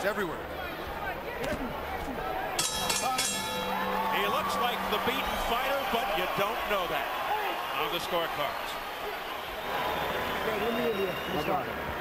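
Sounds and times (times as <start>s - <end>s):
arena crowd noise: 0.0s - 12.0s
ringside bell struck: 2.6s - 7.0s.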